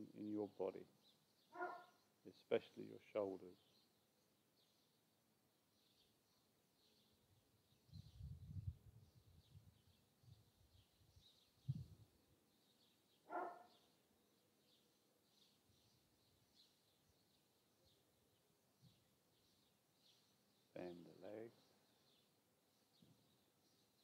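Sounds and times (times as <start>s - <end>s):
dog bark: 1.5s - 2.0s, 13.3s - 13.8s
faint bird chirps: 5.7s - 24.0s.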